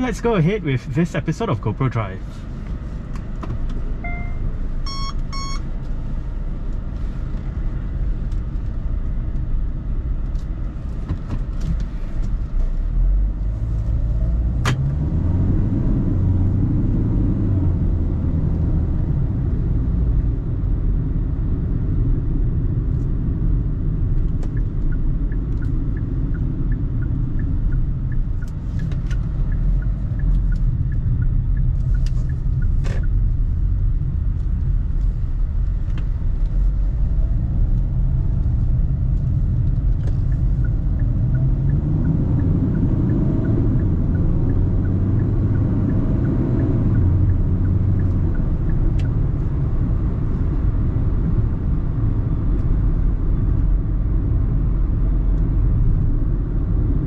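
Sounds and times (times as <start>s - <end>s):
road rumble: 0.0s - 57.0s
short electronic beep: 4.0s - 5.7s
car engine accelerating: 12.2s - 22.2s, 23.0s - 57.0s
faint regular ticking: 24.4s - 33.9s, 38.4s - 49.8s.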